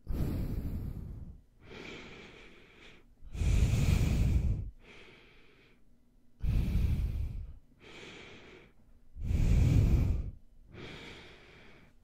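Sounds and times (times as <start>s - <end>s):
heavy nasal breathing: 0.0s - 12.0s.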